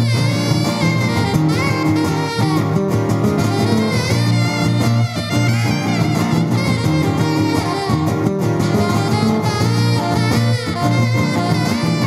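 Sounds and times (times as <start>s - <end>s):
saxophone melody: 0.0s - 12.0s
strummed acoustic guitar: 0.0s - 12.0s.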